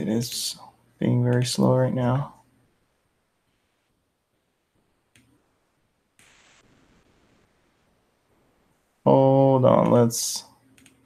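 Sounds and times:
faint rush of noise: 2.0s - 10.7s.

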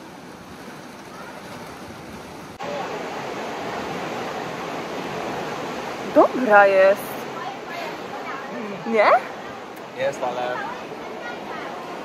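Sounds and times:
sea surf breaking on rocks: 0.0s - 12.0s.

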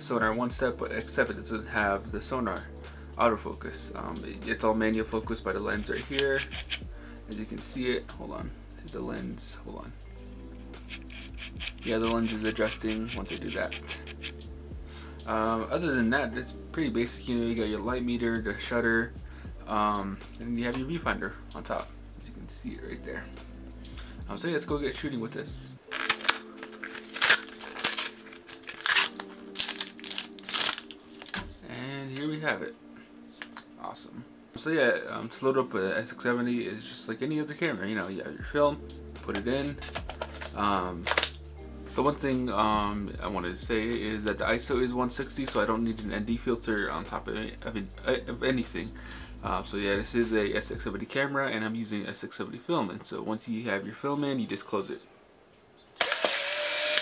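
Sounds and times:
packaging crinkling: 10.9s - 14.4s, 25.9s - 31.5s, 39.8s - 41.4s
camera motor whine: 56.0s - 57.0s.

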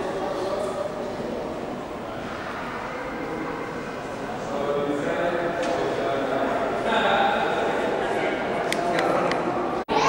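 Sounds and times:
hubbub of distant voices: 0.0s - 10.0s.

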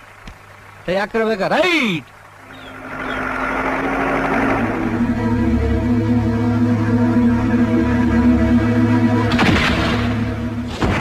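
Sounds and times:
tractor engine running: 0.0s - 11.0s
music: 4.3s - 11.0s.

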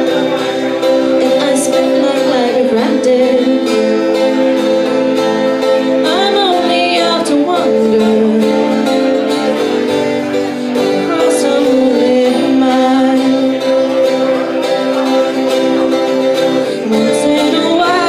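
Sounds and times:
strummed acoustic guitar: 0.0s - 18.0s
woman singing folk-rock song: 0.0s - 18.0s.

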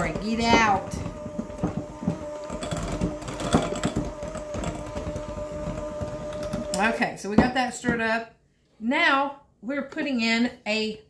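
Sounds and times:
electric hand mixer whining: 0.0s - 7.6s.

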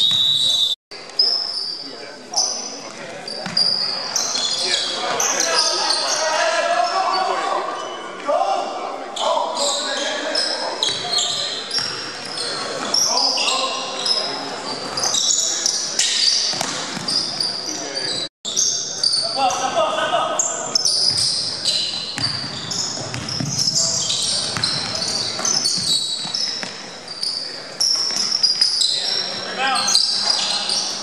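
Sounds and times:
sneakers squeaking: 0.0s - 8.2s, 9.1s - 19.8s, 20.4s - 31.0s
basketball bouncing: 22.2s - 25.9s.

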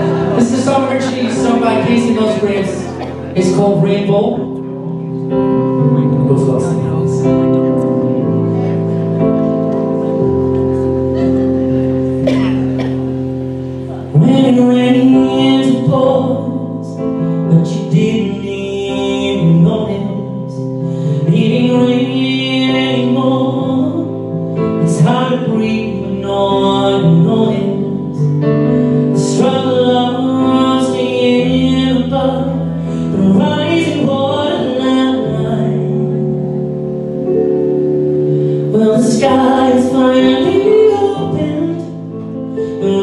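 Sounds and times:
man singing a ballad: 0.0s - 4.9s, 13.8s - 37.0s, 38.5s - 43.0s
accompaniment chords: 0.0s - 43.0s.

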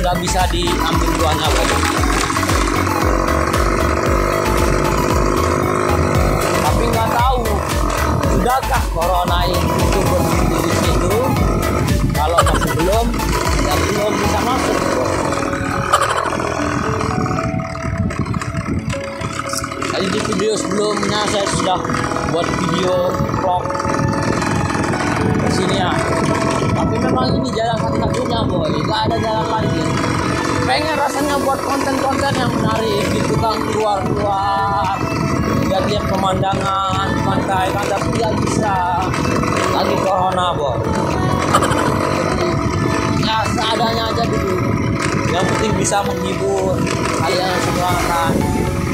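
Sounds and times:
motorcycle engine and road noise: 0.0s - 48.9s
wind rumbling on microphone: 0.0s - 48.9s.

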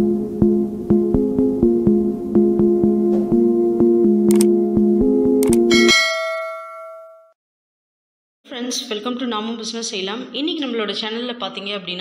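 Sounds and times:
notification bell ding: 5.7s - 7.3s.

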